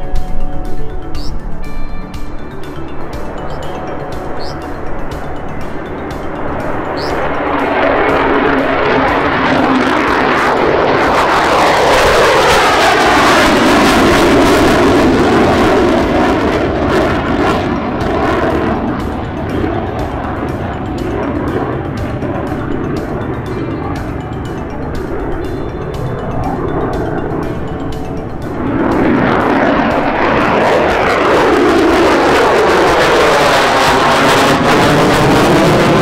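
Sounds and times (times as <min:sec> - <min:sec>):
jet engine roar: 0:00.0 - 0:36.0
music with steady beat: 0:00.0 - 0:36.0.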